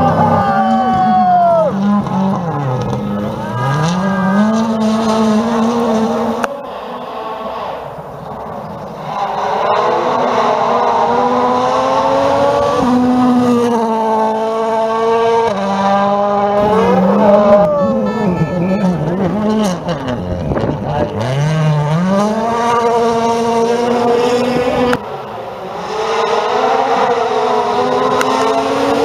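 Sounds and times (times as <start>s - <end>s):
rally car engines at full throttle: 0.0s - 29.0s.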